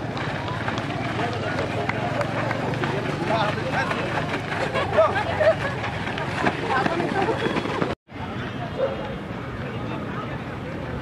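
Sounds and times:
footfalls running on dirt: 0.0s - 8.0s
indistinct voices and chatter: 0.0s - 11.0s.

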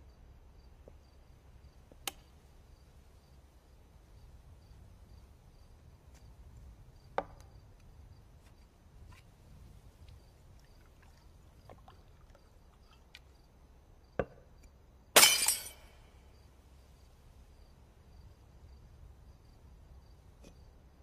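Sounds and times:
faint insect chirps: 0.0s - 21.0s.

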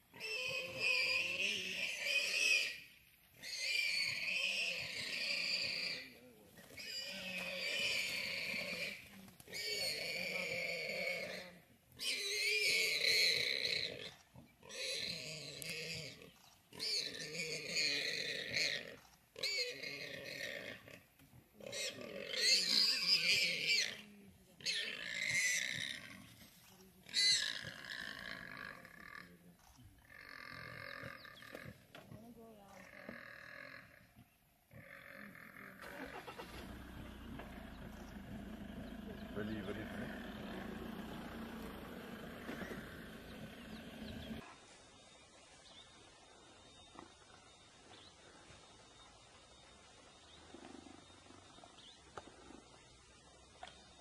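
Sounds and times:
warthog squealing in distress: 6.8s - 16.2s, 34.8s - 44.4s.

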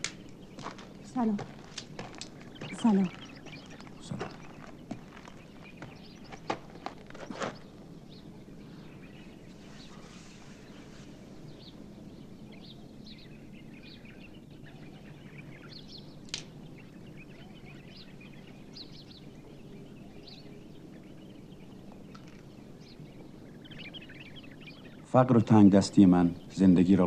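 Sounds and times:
background hiss: 0.0s - 27.0s
faint bird chirps: 0.0s - 27.0s.

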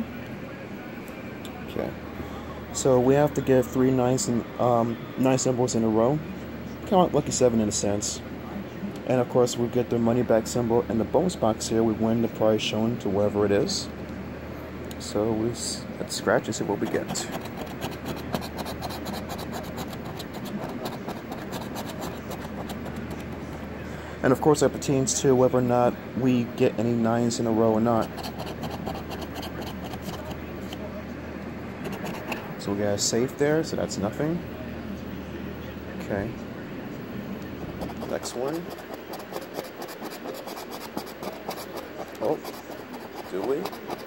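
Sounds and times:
coin scratching lottery ticket: 16.4s - 23.6s, 27.7s - 30.9s, 31.8s - 32.6s, 37.6s - 44.0s.

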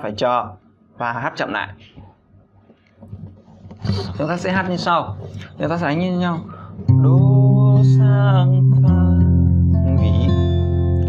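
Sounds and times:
low steady hum: 0.0s - 11.0s
man speaking: 3.8s - 6.6s.

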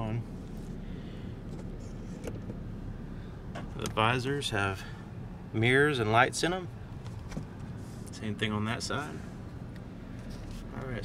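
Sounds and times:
vehicle cabin hum: 0.0s - 11.0s.

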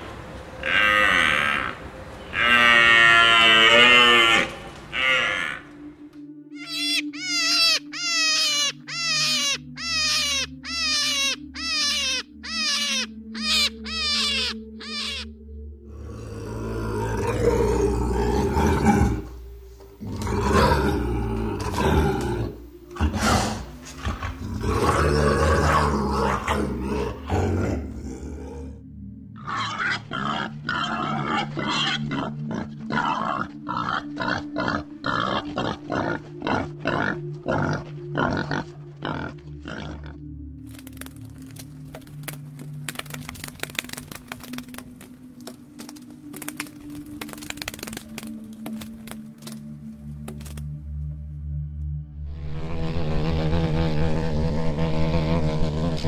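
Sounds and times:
background music: 0.0s - 56.0s
short falling animal calls: 6.6s - 15.3s
lynx growling and yowling: 20.0s - 28.8s, 29.4s - 40.2s
wild boar grunting: 20.0s - 28.8s, 29.4s - 40.2s.

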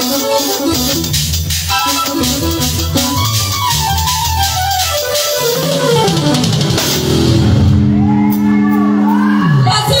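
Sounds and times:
church band playing: 0.0s - 10.0s
drum kit with cymbals: 0.0s - 10.0s.

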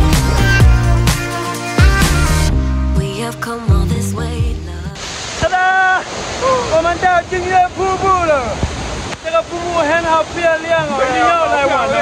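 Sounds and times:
background music: 0.0s - 5.0s
waterfall roaring: 5.0s - 12.0s.

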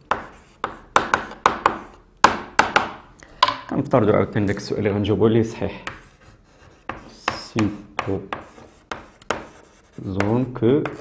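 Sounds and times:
chalk scratching on blackboard: 0.0s - 2.0s, 5.8s - 11.0s.

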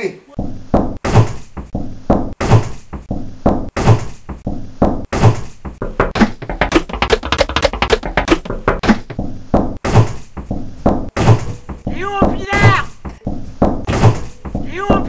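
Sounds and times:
heavy thumping beat: 0.4s - 1.0s, 1.8s - 2.4s, 3.2s - 3.7s, 4.6s - 5.1s, 5.8s - 9.8s, 10.5s - 11.2s, 11.8s - 13.9s, 14.5s - 15.0s.

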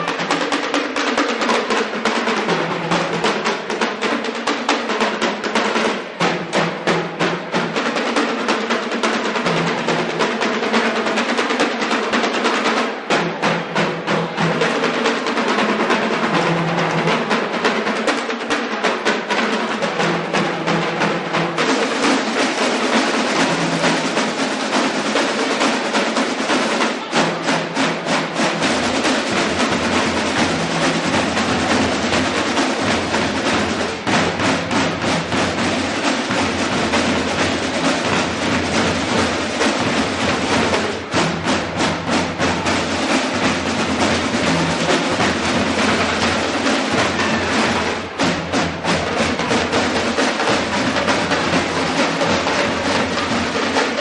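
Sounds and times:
marching band instruments: 0.0s - 54.0s.

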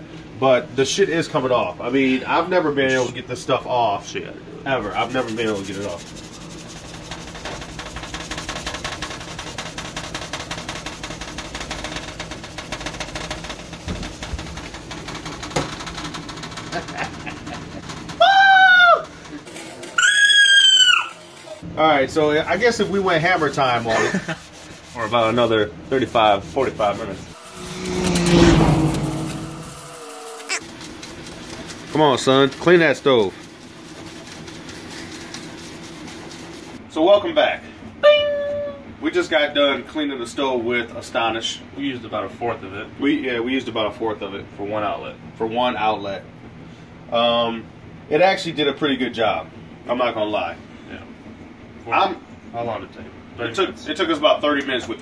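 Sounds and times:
steady low hum: 0.0s - 18.2s, 21.6s - 38.0s
sponge scrubbing enamel: 4.8s - 17.4s, 22.2s - 36.8s
loud high-pitched cries: 18.2s - 19.1s, 20.0s - 21.4s, 29.8s - 30.6s.

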